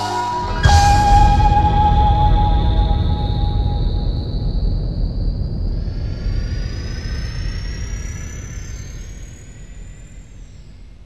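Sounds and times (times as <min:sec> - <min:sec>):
jet engines rumbling and whining: 0:00.0 - 0:11.0.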